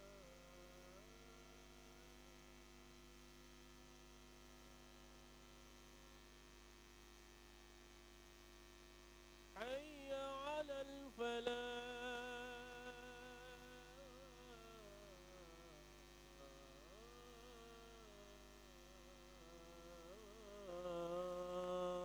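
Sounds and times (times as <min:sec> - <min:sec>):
person chanting: 0:00.0 - 0:01.4, 0:09.6 - 0:22.0
electrical mains hum: 0:00.0 - 0:22.0.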